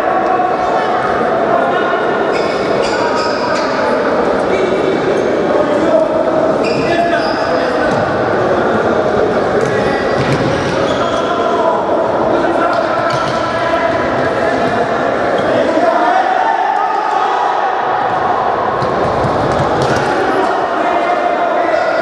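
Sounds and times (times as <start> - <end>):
players shouting with echo: 9.6 - 22.0.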